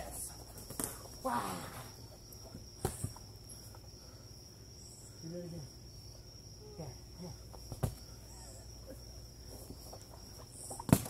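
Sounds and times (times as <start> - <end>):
crickets chirping: 0.0 - 11.0
sharp smack: 10.8 - 11.0.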